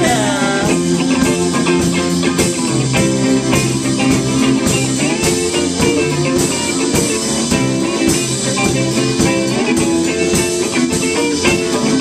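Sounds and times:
drum kit steady beat: 0.0s - 12.0s
electric guitars: 0.0s - 12.0s.

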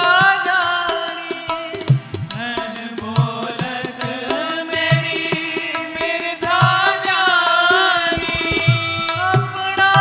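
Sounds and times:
person singing devotional chant: 0.0s - 10.0s.

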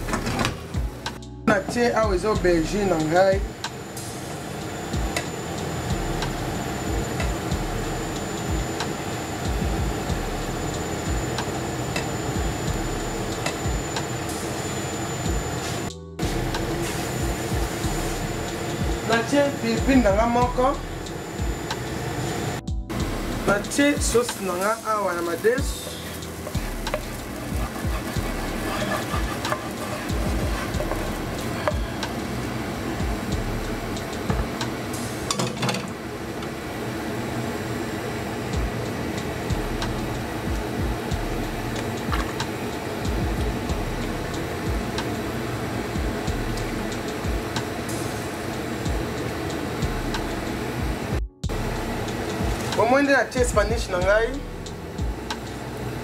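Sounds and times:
background music: 0.0s - 36.2s, 38.2s - 56.0s
wooden spoon scraping a frying pan: 25.3s - 32.0s.

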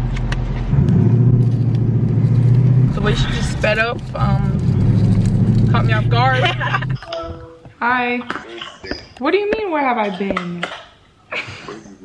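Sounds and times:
car engine rumble inside cabin: 0.0s - 7.0s.

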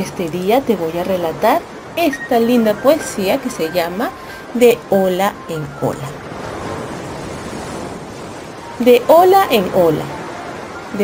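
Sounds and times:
ocean waves: 0.0s - 11.0s.

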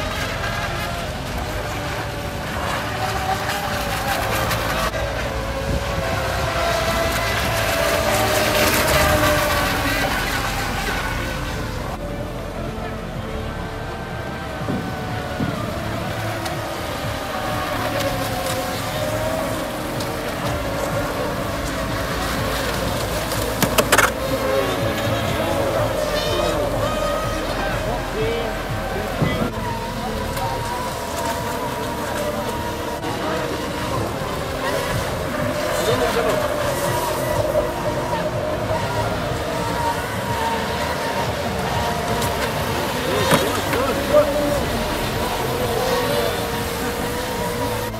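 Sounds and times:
model boat motors whining: 0.0s - 47.9s.

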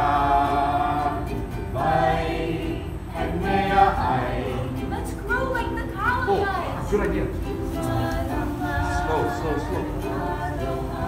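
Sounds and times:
group of voices singing: 0.0s - 11.0s
ukulele: 0.0s - 11.0s.

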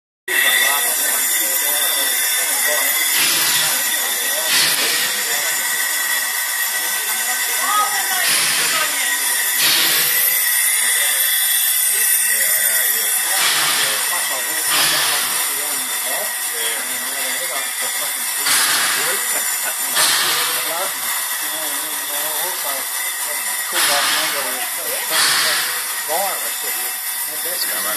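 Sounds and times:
steam hissing: 0.3s - 27.9s
steam puffs: 0.3s - 27.9s.

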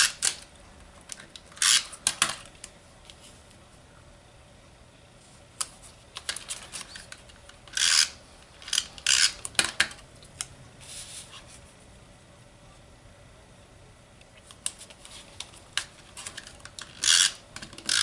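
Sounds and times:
paper scraping rustles: 10.8s - 11.7s.

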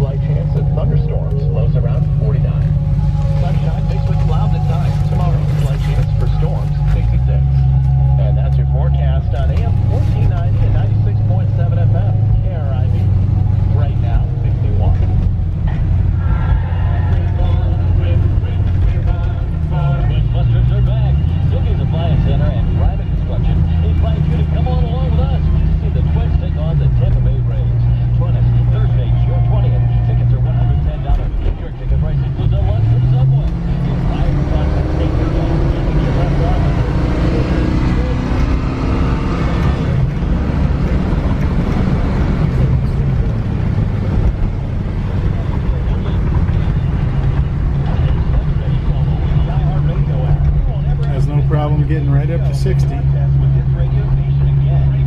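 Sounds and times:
car engine accelerating: 0.0s - 55.0s
road and wind noise: 0.0s - 55.0s.

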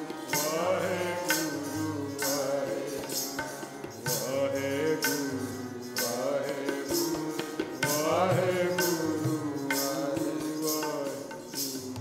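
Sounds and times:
harmonium sustained chords: 0.0s - 10.8s.

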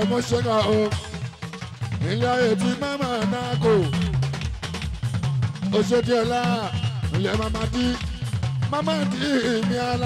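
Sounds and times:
drums and percussion with bass: 0.0s - 10.0s
lead singer's voice: 2.0s - 4.2s, 5.7s - 10.0s.

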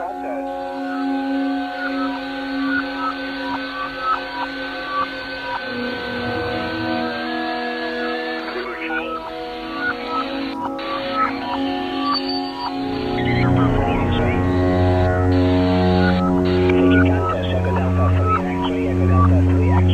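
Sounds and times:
ambient drone music: 0.0s - 19.9s
radio band hiss: 0.0s - 19.9s
sustained whistling tones: 0.0s - 19.9s.

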